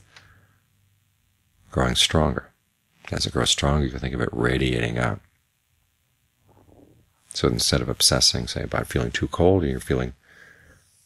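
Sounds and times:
man speaking: 1.7s - 2.5s, 3.1s - 5.2s, 7.3s - 10.2s.

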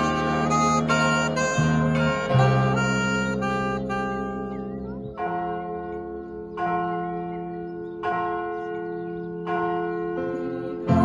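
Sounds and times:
church bells struck: 0.0s - 11.0s.

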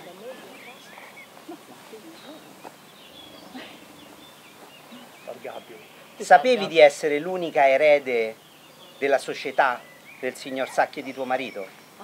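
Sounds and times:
wild birds chirping and whistling: 0.0s - 12.0s.

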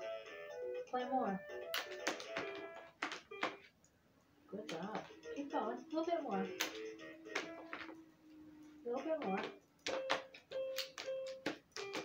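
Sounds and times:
toy piano notes: 4.6s - 12.0s.

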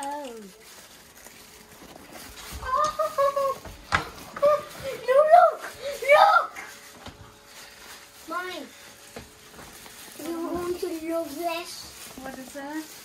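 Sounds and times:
child making high-pitched sounds: 2.6s - 3.6s, 4.4s - 6.8s.

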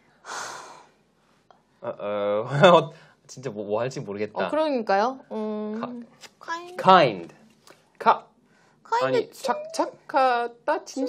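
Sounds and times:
person sighing exhale: 0.2s - 0.9s.

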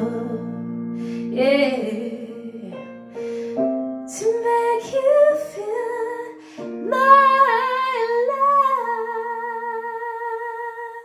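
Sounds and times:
woman singing ballad: 0.0s - 3.1s, 4.1s - 11.0s.

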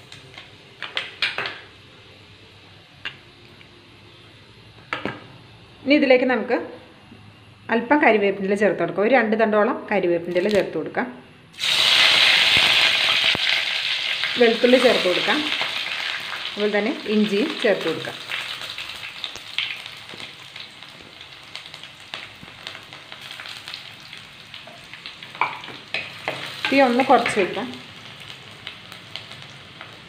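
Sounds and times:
hot oil sizzling in a pot: 0.0s - 2.6s, 11.5s - 30.0s.

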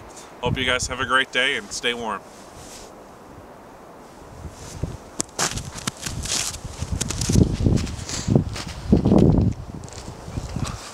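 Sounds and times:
footsteps crunching through snow: 2.2s - 3.0s, 4.1s - 10.9s.

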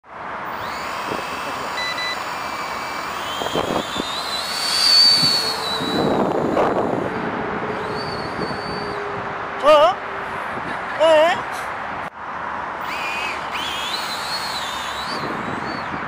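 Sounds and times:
toy quadcopter motors whining: 0.4s - 9.1s, 12.8s - 16.0s.

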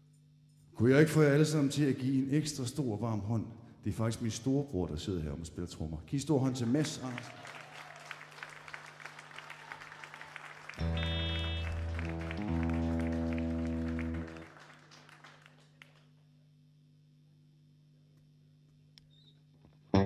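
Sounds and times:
applause: 6.4s - 16.2s
held instrument chord: 10.8s - 14.5s.

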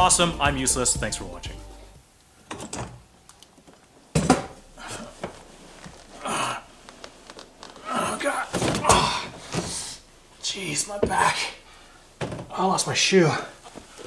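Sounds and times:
clothing rustling: 3.5s - 10.5s, 13.5s - 14.0s
man grunting: 7.8s - 9.4s.

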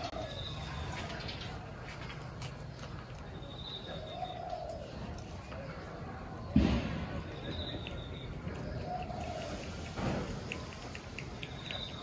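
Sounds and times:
dove cooing: 8.6s - 12.0s.

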